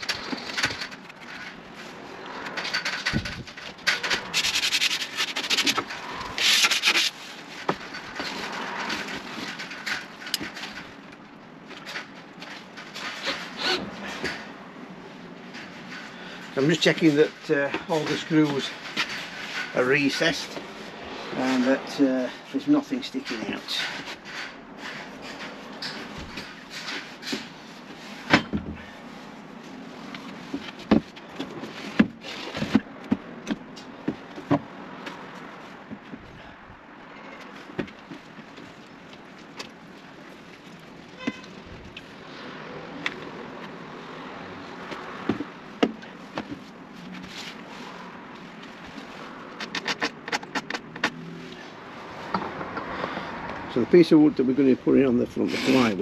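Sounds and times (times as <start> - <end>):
faint outdoor background: 0.0 - 56.0.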